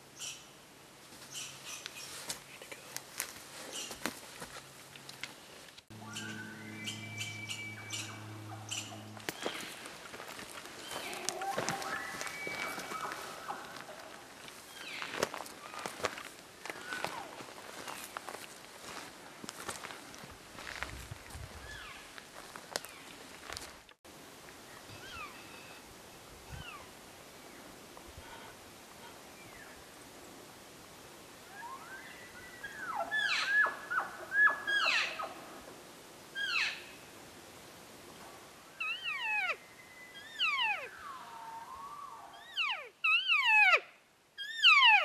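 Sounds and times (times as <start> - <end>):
footsteps through brush: 1.1 - 23.9
elk mewing calls: 5.9 - 9.8
steady low tone: 5.9 - 11.4.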